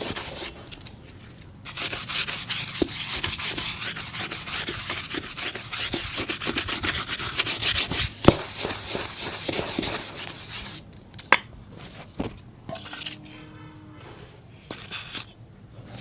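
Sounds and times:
brush scrubbing shoe: 1.7s - 10.8s.

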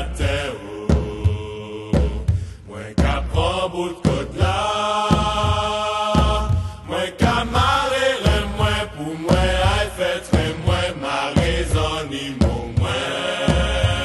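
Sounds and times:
deep drum beat: 0.0s - 14.0s
person singing chant-like melody: 0.0s - 14.0s.

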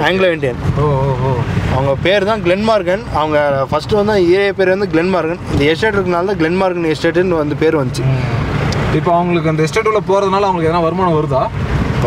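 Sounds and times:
vehicle engine and road noise: 0.0s - 12.0s.

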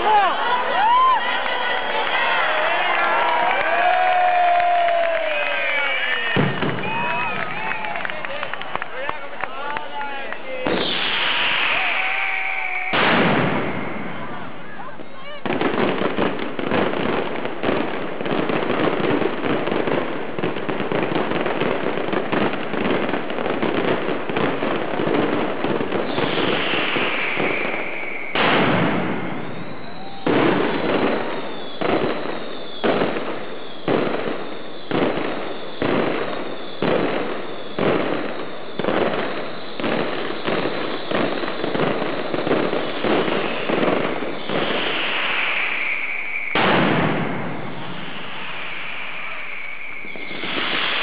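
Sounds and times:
firecrackers crackling: 0.0s - 51.0s
whistling rockets: 0.0s - 51.0s.

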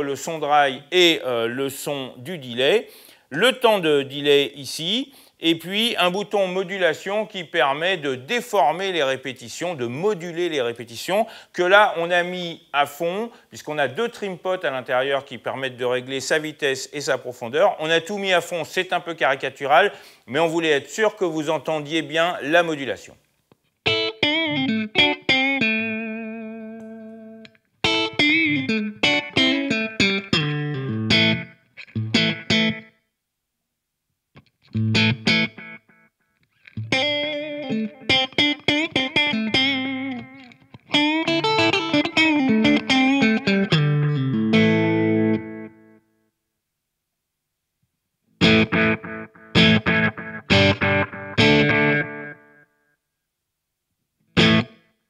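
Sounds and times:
electric guitar with delay: 23.9s - 32.9s, 34.7s - 45.9s, 48.4s - 52.6s, 54.4s - 54.8s.

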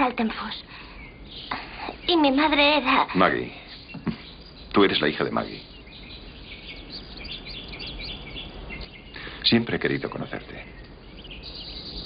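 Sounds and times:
low background hum: 0.0s - 12.0s
small birds chirping: 0.0s - 12.0s.

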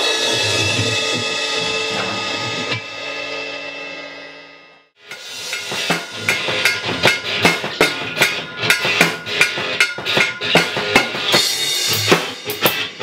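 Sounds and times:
electric guitar strummed hard: 0.0s - 13.0s
sharp percussive hits: 5.0s - 13.0s.

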